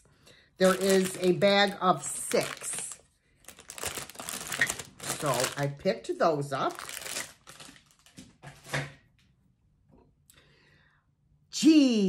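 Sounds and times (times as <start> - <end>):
plastic bag crinkling: 0.6 - 5.9, 6.5 - 8.7.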